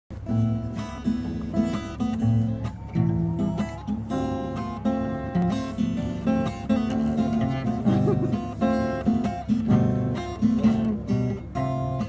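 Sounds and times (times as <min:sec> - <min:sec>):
classical acoustic guitar: 0:00.1 - 0:12.0.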